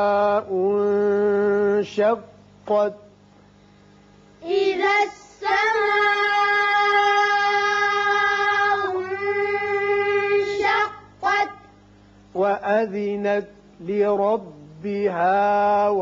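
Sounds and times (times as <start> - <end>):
child chanting: 4.4 - 11.7.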